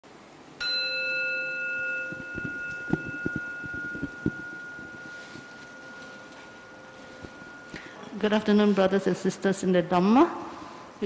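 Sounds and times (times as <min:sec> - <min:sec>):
bell ringing: 0:00.6 - 0:09.2
low knocks: 0:02.0 - 0:05.1.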